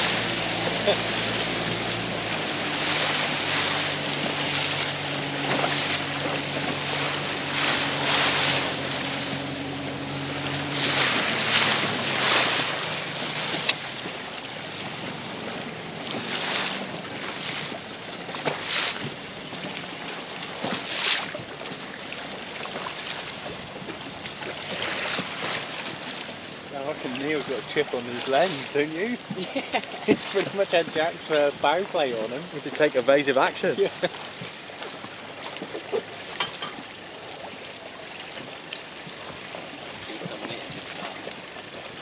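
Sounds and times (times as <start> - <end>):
choppy sea water washing: 0.0 - 42.0
low engine hum: 0.0 - 42.0.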